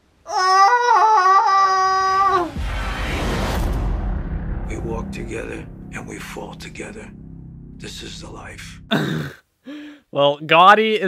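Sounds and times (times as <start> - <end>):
rumbling whoosh sound effect: 2.2 - 8.9
man groaning high-pitched: 8.9 - 9.4.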